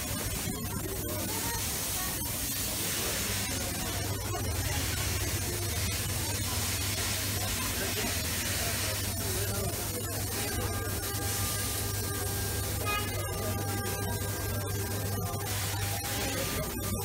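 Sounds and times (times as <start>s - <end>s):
faint indistinct voices: 0.0s - 17.0s
steady hissing noise: 0.0s - 17.0s.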